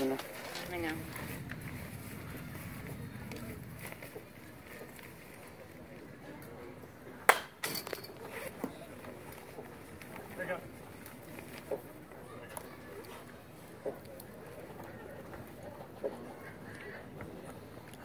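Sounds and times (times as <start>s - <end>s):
murmur of ballpark crowd: 0.0s - 18.0s
baseball hitting catcher's mitt: 7.3s - 7.7s.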